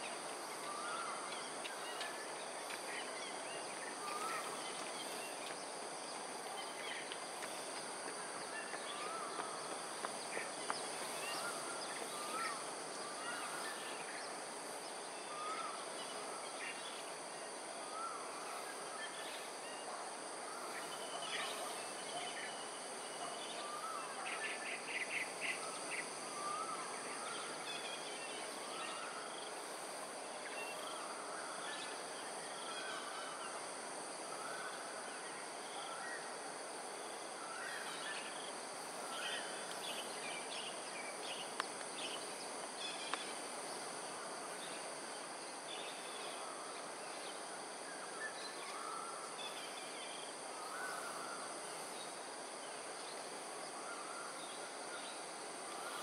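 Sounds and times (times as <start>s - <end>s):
high insect hum: 0.0s - 56.0s.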